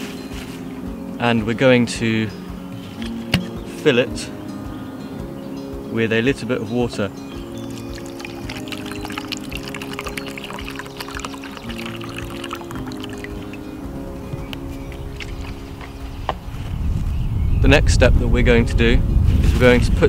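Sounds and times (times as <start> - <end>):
background music with chords: 0.0 - 19.3
water pouring into plastic jug: 7.6 - 13.8.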